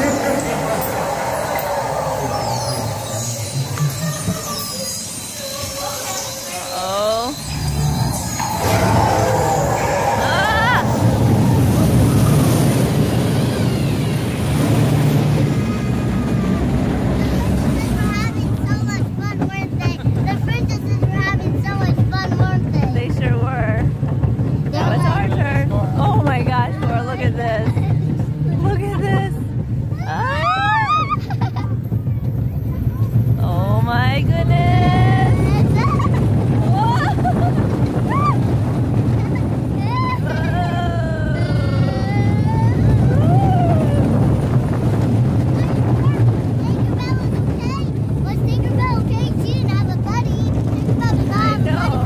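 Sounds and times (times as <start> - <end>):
rising wail: 0.0 - 17.6, 29.9 - 31.2, 39.9 - 44.5
roller coaster rumbling on track: 0.0 - 52.0
high falling whistles: 0.1 - 14.5.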